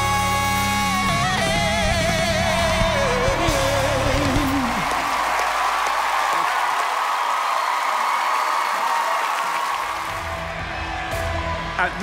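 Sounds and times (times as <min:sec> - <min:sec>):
audience applauding and cheering: 0:01.2 - 0:12.0.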